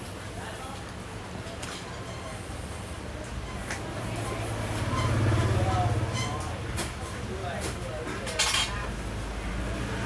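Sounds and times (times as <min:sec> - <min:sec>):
clatter of hard objects: 0:06.2 - 0:08.9.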